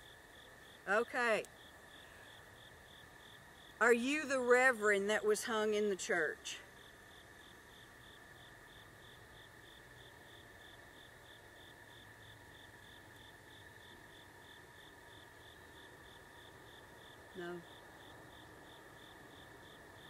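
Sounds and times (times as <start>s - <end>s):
cricket chirping: 0.0s - 20.0s
insect trill: 0.0s - 20.0s.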